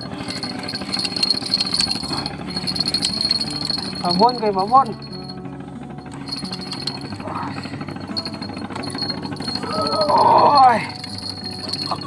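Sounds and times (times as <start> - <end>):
small boat engine running: 0.0 - 12.0
person exclaiming: 9.6 - 10.9.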